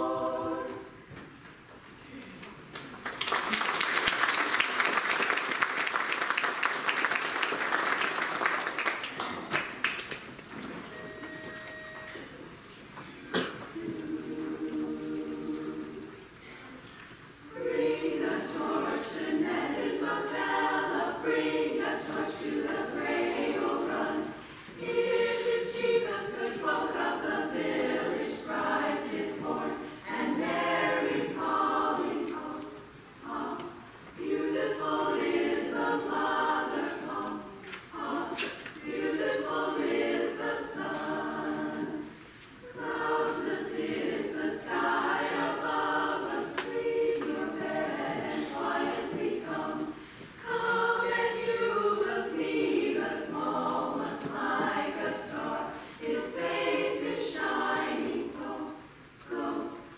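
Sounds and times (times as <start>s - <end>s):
vocal ensemble singing in harmony: 0.0s - 1.2s, 13.0s - 59.9s.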